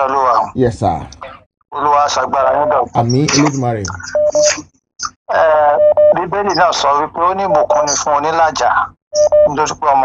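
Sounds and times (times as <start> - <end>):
person speaking: 0.0 - 10.0
telephone keypad beeps: 9.2 - 9.6.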